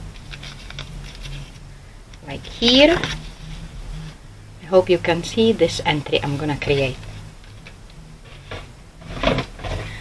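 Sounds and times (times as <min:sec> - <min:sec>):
paper-craft tools handling paper: 0:00.2 - 0:01.6.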